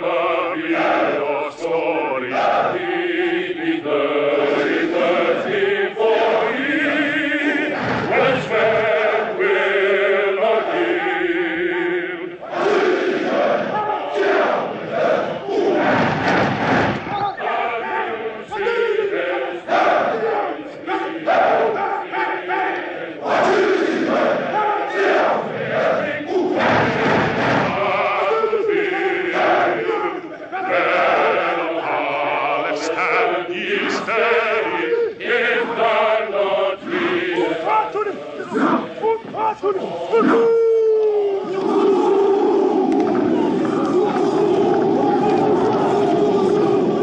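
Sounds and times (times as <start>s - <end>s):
long held cry: 0.0s - 16.0s, 17.0s - 27.1s, 27.7s - 47.0s
men chanting and singing: 0.0s - 47.0s
roar of many men yelling: 5.6s - 14.6s, 37.1s - 47.0s.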